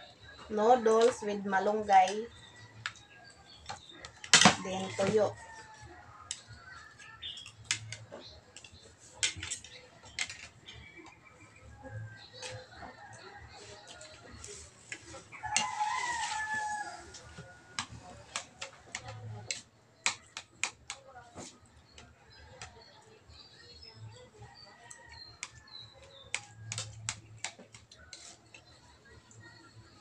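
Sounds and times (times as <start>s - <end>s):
cutlery scraping on plates: 6.3s - 11.1s, 12.3s - 22.8s, 24.9s - 28.8s
rooster crowing: 15.4s - 17.7s.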